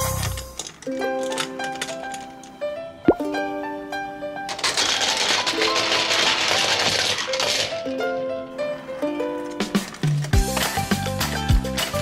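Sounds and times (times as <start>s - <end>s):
toy buses rattling down plastic ramp: 0.0s - 2.6s, 4.4s - 12.0s.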